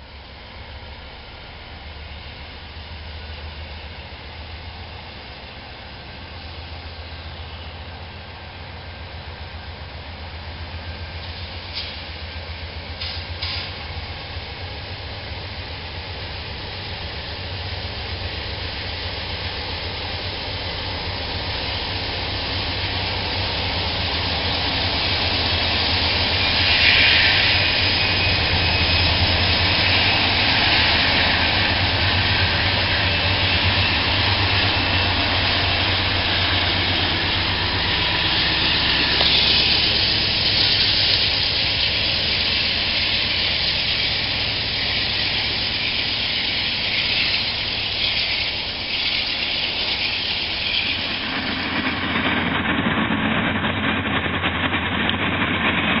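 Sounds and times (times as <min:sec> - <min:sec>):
diesel locomotive engine hum: 0:00.0 - 0:56.0
train wheels on rails: 0:00.0 - 0:56.0.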